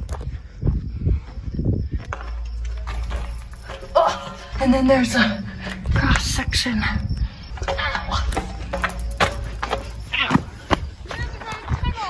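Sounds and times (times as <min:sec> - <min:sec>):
low rumbling and shuffling: 0:00.0 - 0:12.0.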